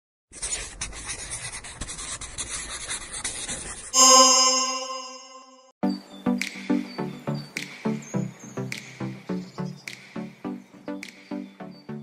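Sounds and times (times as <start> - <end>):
pencil scribbling on paper: 0.3 - 4.6
bright chime: 4.0 - 5.7
music track with a beat: 6.3 - 11.6.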